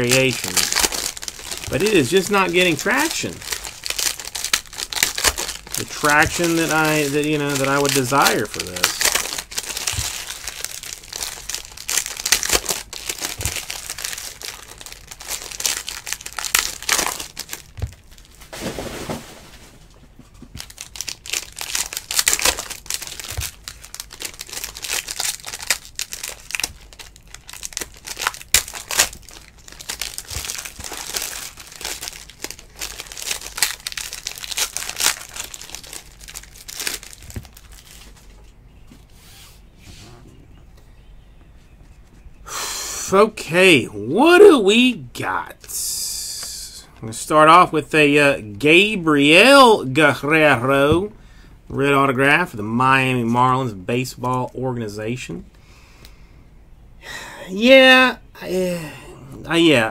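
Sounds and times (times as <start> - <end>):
foil wrappers crackling and rustling: 0.0 - 19.9, 20.5 - 38.5.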